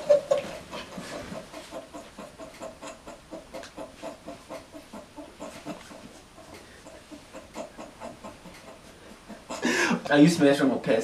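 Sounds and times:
man's stifled laughter: 9.1s - 10.1s.

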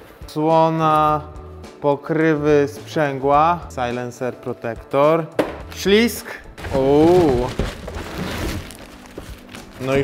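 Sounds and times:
plastic bag rustling: 6.5s - 10.0s
cardboard box handled: 6.6s - 10.0s.

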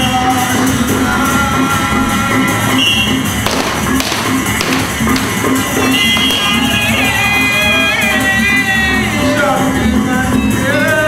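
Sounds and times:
sharp knocks: 3.5s - 6.8s.

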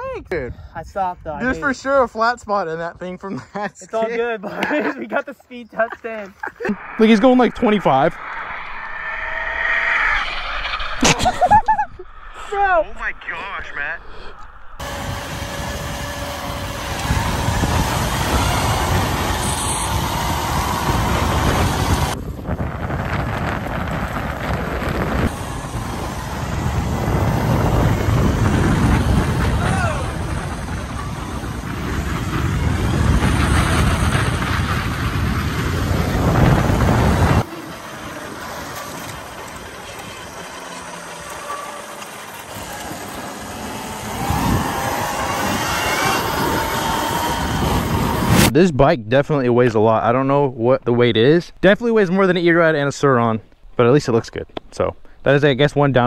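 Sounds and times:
wind noise: 5.7s - 40.6s, 42.5s - 48.6s
road noise: 5.9s - 48.6s
electric motor whine: 14.8s - 22.2s, 35.5s - 48.5s.

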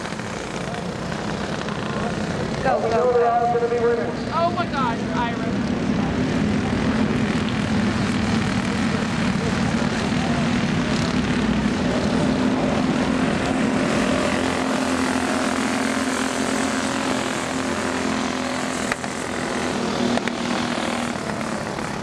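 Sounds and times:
go-kart engines droning: 0.0s - 22.0s.

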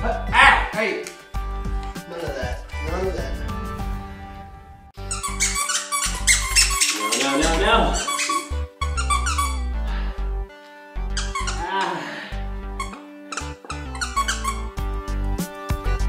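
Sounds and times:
squeaky dog toy squeaking: 5.0s - 9.7s, 11.2s - 11.6s, 12.8s - 14.8s.

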